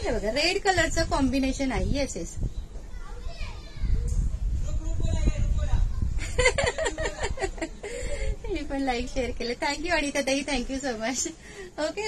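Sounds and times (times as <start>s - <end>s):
woman speaking: 0.0s - 2.4s, 8.4s - 12.0s
children playing and calling out: 2.6s - 4.5s.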